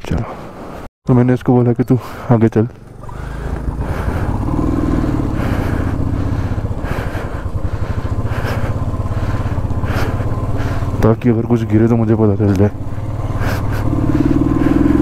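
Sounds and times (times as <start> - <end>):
motorcycle engine on dirt track: 2.0 - 15.0.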